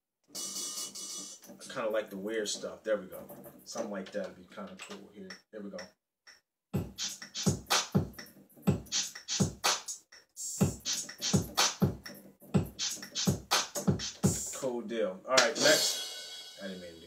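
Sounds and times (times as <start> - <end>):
drum machine beat: 0.4 - 4.2, 6.8 - 14.6, 15.4 - 16.6.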